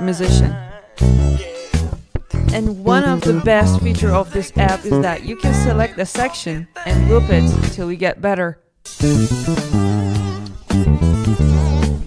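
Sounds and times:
electric bass guitar line: 0.0 - 5.9, 6.9 - 7.8, 9.0 - 12.0
backing track music: 0.0 - 7.8, 8.9 - 12.0.

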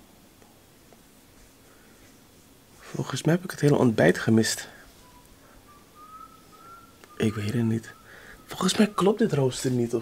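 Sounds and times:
faint thin whistle: 4.9 - 9.7.

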